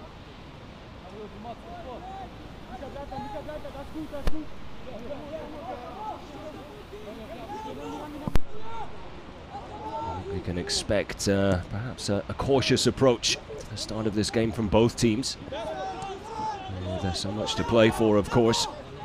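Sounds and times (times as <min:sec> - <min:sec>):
people shouting: 0:07.4 - 0:10.3, 0:15.6 - 0:18.7.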